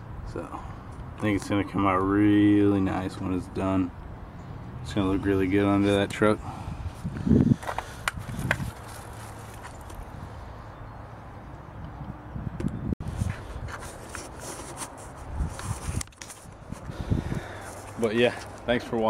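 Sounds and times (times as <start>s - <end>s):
camera handling rustles: 7.6s - 10.1s, 13.1s - 16.9s.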